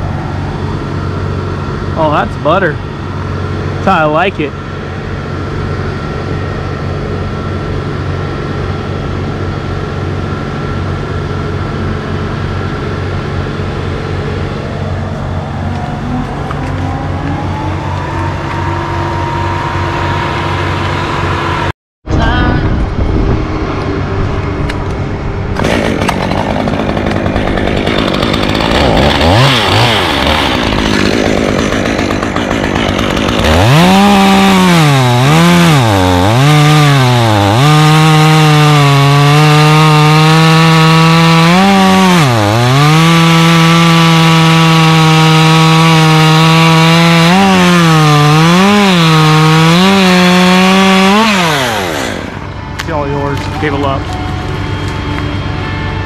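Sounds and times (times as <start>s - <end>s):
steady engine hum: 0.0s - 56.0s
chainsaw cutting wood: 18.0s - 21.7s, 25.6s - 53.8s.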